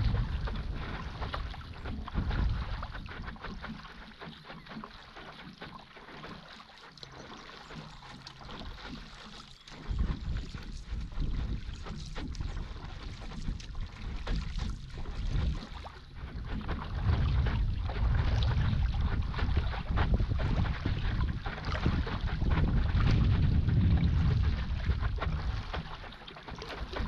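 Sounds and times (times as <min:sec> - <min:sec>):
wind rumbling on microphone: 0:00.0 - 0:04.8, 0:07.6 - 0:27.0
water splashing and rushing: 0:00.0 - 0:27.0.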